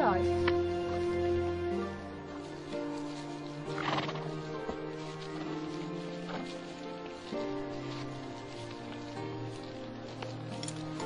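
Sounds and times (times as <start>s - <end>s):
sustained background music: 0.0s - 11.0s
horse whinnying: 3.7s - 4.4s.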